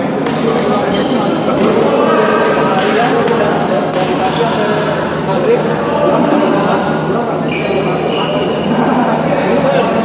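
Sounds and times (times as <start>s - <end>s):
background chatter of players: 0.0s - 10.0s
rackets hitting shuttlecocks: 0.2s - 0.9s.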